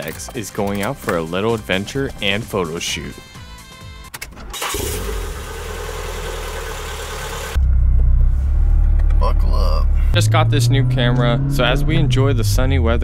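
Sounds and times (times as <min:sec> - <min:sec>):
ignition key clicks: 0:04.0 - 0:04.6
car engine starting and idling: 0:04.0 - 0:13.0.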